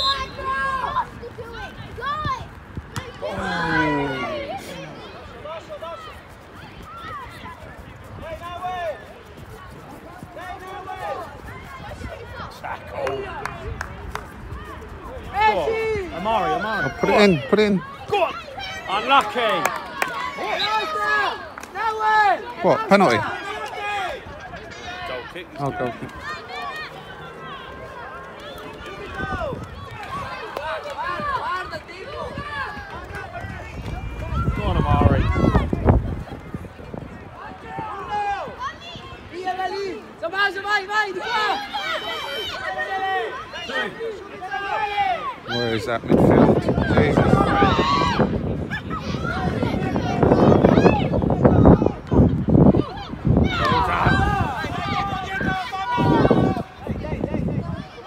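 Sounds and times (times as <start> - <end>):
distant shouts of young footballers: 0.0 - 58.0.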